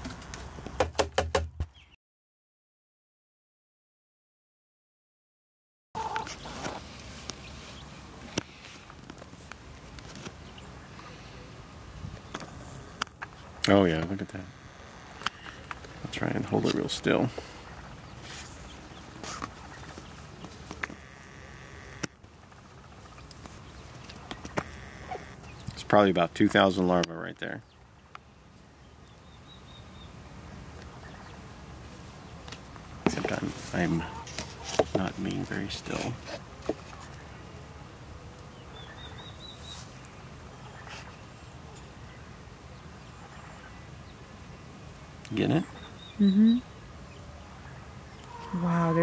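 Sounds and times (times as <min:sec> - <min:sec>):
outdoor background noise: 0:00.0 - 0:02.0, 0:06.0 - 0:49.0
bird chirping: 0:01.6 - 0:02.0, 0:10.3 - 0:12.6, 0:16.6 - 0:31.5, 0:38.4 - 0:44.5, 0:45.3 - 0:49.0
faint low background noise: 0:06.0 - 0:49.0.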